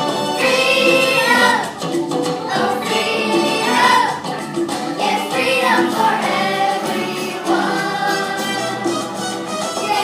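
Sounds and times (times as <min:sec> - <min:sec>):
children singing together: 0:00.0 - 0:10.0
musical accompaniment: 0:00.0 - 0:10.0.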